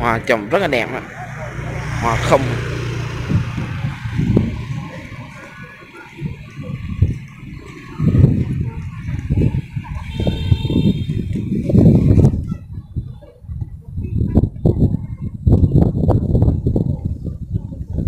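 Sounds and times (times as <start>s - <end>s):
wind buffeting microphone: 0.0s - 18.0s
microphone handling noise: 8.0s - 18.0s.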